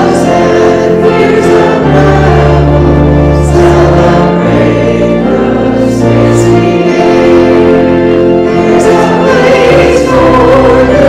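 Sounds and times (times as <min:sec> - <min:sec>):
congregation singing a hymn: 0:00.0 - 0:11.0.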